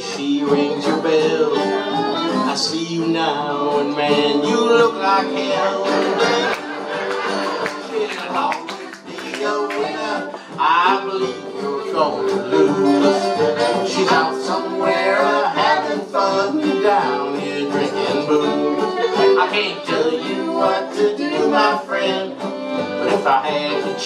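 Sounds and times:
acoustic guitars: 0.0s - 24.0s
fiddle: 0.0s - 24.0s
person singing: 0.0s - 24.0s
upright bass: 0.0s - 24.0s.

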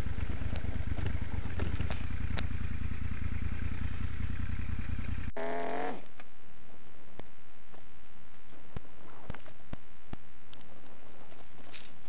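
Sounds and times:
motorcycle engine running: 0.0s - 6.1s.

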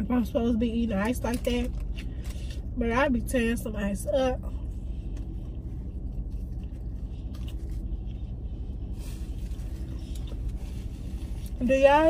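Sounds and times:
car engine rumble in cabin: 0.0s - 12.0s.

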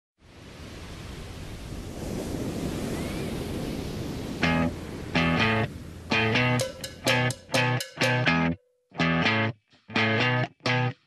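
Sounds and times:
ocean surf: 0.2s - 8.2s.

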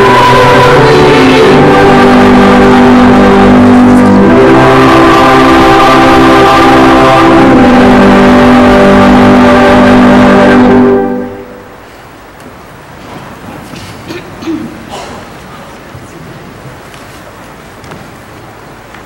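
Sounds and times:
choir and congregation singing hymn: 0.0s - 11.7s.

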